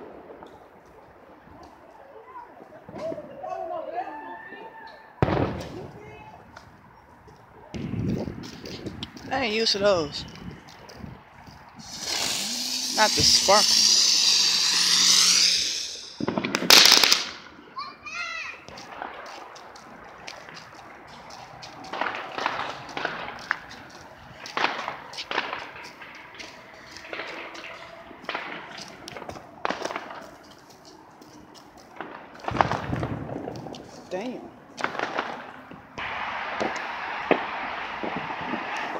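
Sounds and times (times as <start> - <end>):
firework pops and cracks: 0.0 - 1.8, 2.8 - 3.3, 5.2 - 6.7, 10.7 - 17.5, 18.6 - 38.9
loud firework bang: 5.2 - 6.0, 13.0 - 17.4, 32.0 - 33.5, 34.8 - 38.9
spark fountain hissing: 11.8 - 16.3
warbling firework whistle: 11.8 - 17.1.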